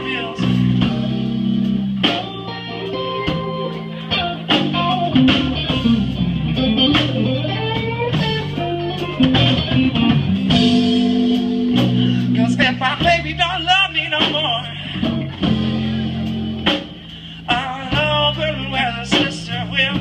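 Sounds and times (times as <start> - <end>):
bass guitar: 0.0 - 20.0
drums: 0.0 - 20.0
electric guitar lead: 0.0 - 20.0.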